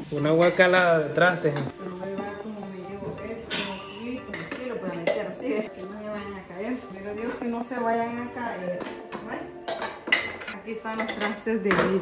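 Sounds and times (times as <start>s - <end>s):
woman talking: 1.8s - 9.6s.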